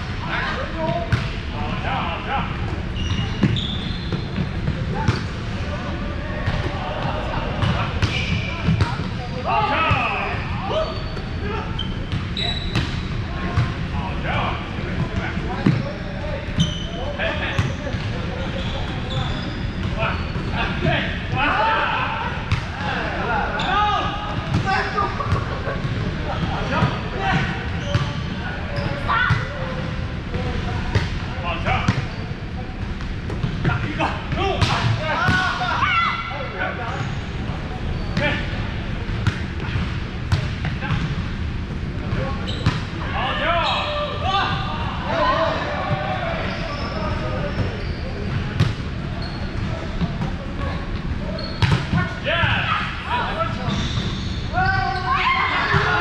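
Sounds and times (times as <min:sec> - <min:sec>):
players calling and chatter: 0:00.0 - 0:56.0.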